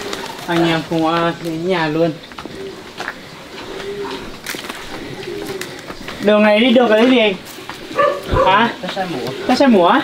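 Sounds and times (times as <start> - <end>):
bird cooing: 0.0 - 10.0.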